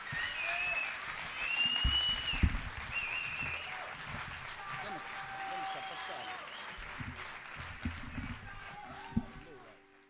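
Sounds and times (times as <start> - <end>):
crowd whistling: 0.0 - 7.1
audience applauding: 0.0 - 10.0
dull thumps: 1.4 - 5.1, 6.7 - 9.8.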